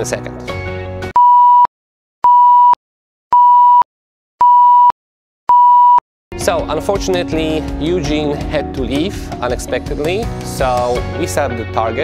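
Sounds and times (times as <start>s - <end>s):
high pure tone beeps: 1.2s - 2.8s, 3.4s - 6.0s.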